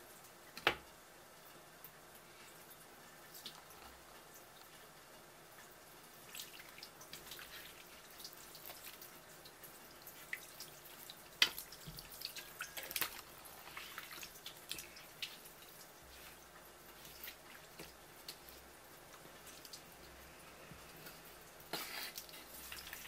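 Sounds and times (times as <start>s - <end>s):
wet handling noises: 6.2s - 20.2s
tap water splashing on board: 11.4s - 12.1s.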